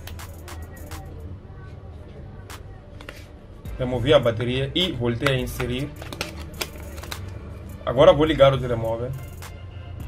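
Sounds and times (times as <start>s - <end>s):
plastic phone cover clicks: 5.2s - 7.3s.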